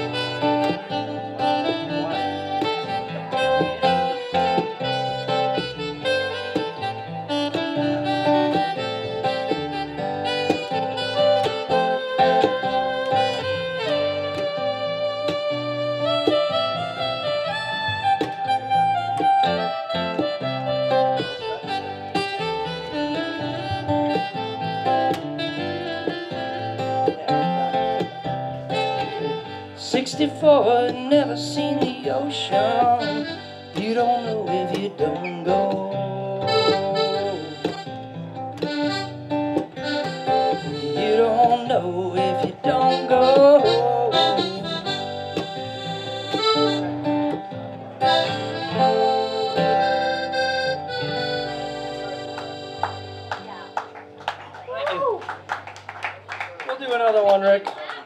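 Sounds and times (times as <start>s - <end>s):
strummed acoustic guitar: 0.0s - 54.5s
wind instrument melody: 0.0s - 55.0s
upright bass: 0.0s - 56.6s.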